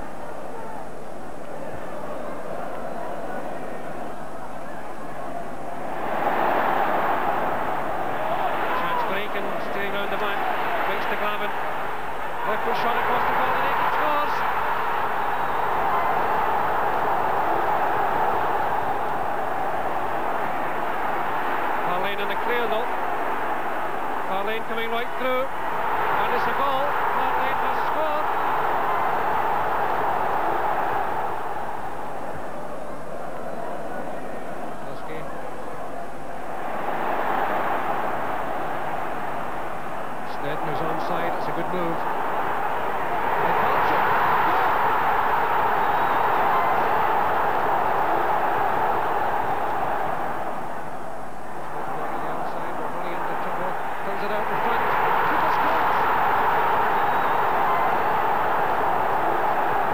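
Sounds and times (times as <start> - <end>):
stadium crowd roaring: 0.0 - 59.9.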